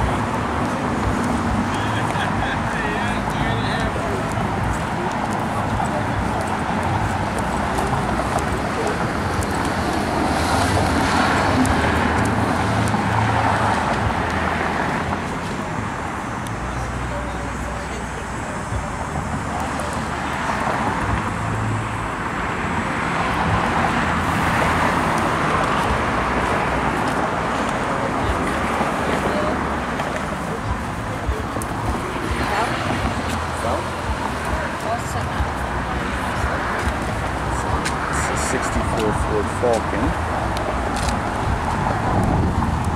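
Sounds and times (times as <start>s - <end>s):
indistinct background conversation: 0.0s - 42.9s
traffic hum: 0.0s - 42.9s.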